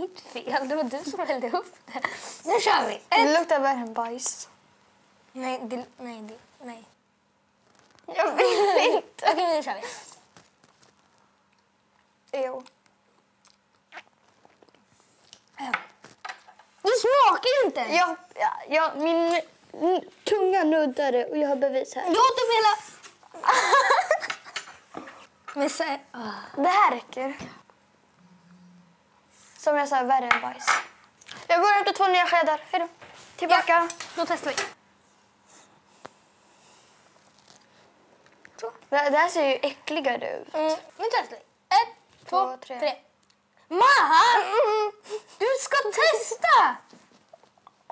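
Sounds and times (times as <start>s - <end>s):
mouth and spoon sounds: 12.6s - 16.2s
tube being squeezed: 13.9s - 14.7s.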